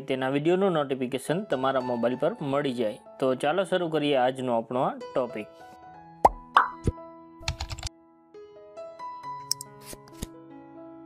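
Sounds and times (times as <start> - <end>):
soft background music: 0.0 - 11.0
cartoon pops sliding in pitch: 6.2 - 7.0
rapid typing clicks: 7.4 - 7.9.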